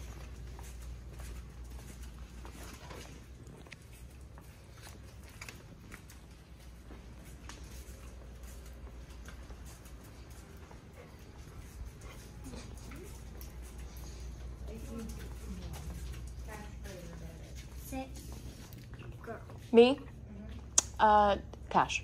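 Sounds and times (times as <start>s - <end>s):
dog's nails clicking on hard floor: 0.0s - 18.8s.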